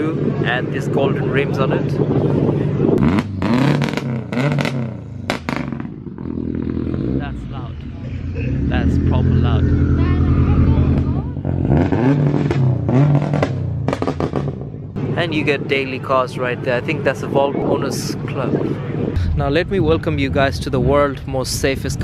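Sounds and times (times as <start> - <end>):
car engine revving: 0.0 - 21.2.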